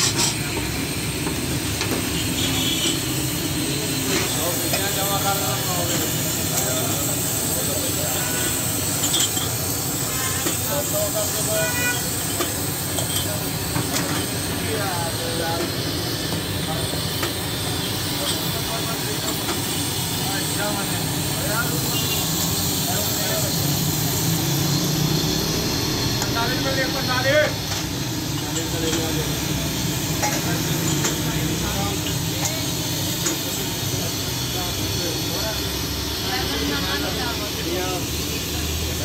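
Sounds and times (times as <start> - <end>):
hiss of burners and steaming pans: 0.0 - 39.0
voices chattering: 0.2 - 39.0.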